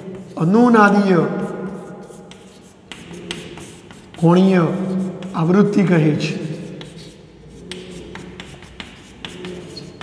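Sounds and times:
chalk tapping and scratching on blackboard: 0.0 - 10.0.

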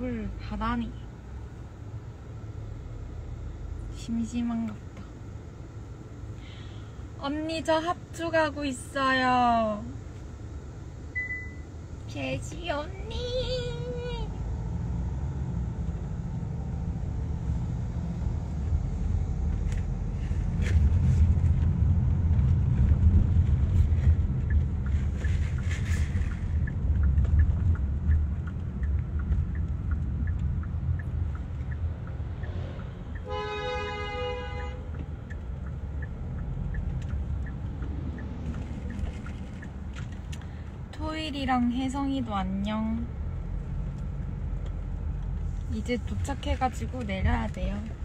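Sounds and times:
road and engine rumble in car: 0.0 - 48.0
vehicle horn: 33.2 - 34.9.

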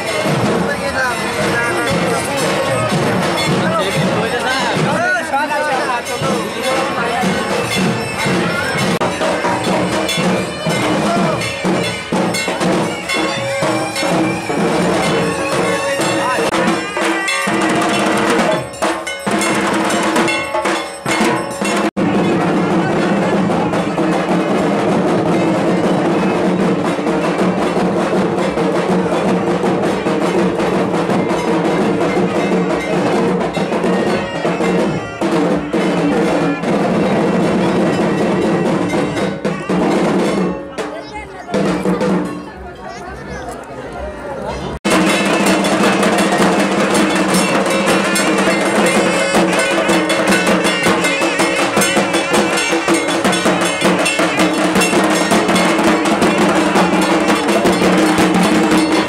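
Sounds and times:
crowd voices: 0.0 - 59.0
drums beating: 0.0 - 59.0.

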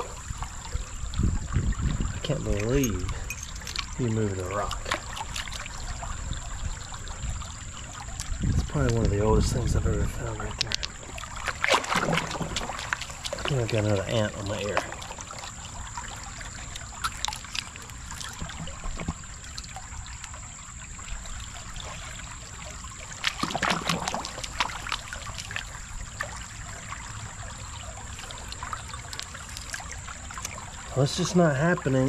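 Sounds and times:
creek water sloshing and splashing: 0.0 - 32.0
stones clicking: 3.3 - 3.9, 10.5 - 11.0.

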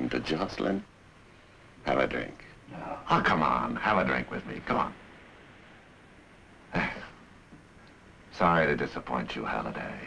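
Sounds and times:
faint television hiss: 0.0 - 10.0
man speaking: 1.8 - 5.0, 6.7 - 7.2, 8.3 - 10.0.

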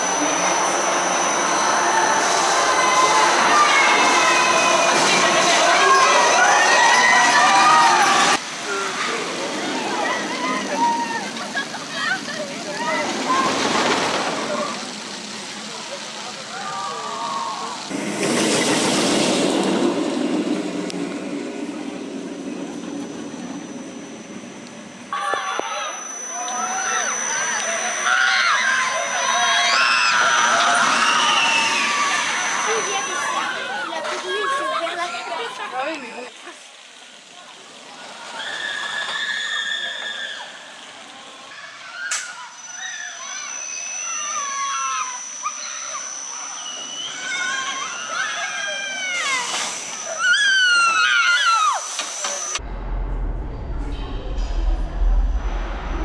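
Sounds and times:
people shouting: 0.0 - 8.9, 25.2 - 34.9
roller coaster rushing past: 0.0 - 15.7, 16.4 - 25.2, 29.3 - 35.4, 49.2 - 56.0.

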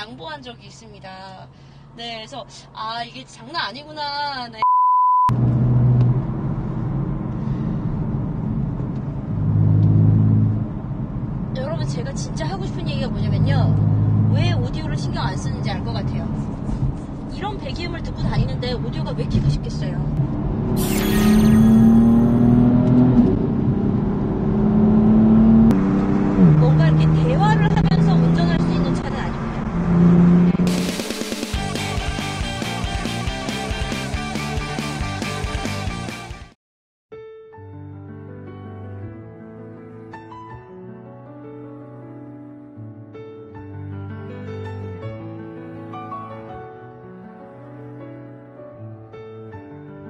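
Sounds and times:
test-tone beep: 4.6 - 5.3, 20.8 - 22.6
car engine exhaust while driving: 5.3 - 14.9.

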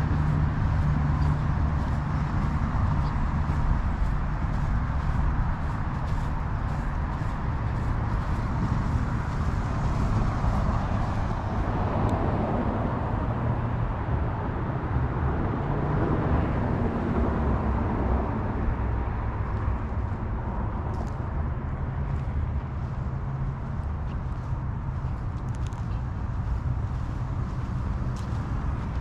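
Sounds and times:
road traffic rumble: 0.0 - 29.0.

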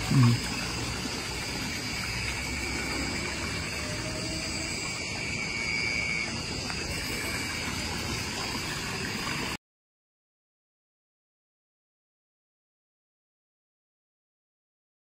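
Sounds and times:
high insect trill: 0.0 - 9.6
running water: 0.0 - 9.6.

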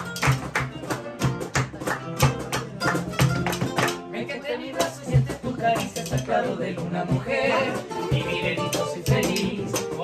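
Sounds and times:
hand claps: 0.0 - 4.1
acoustic guitars playing: 0.0 - 10.0.

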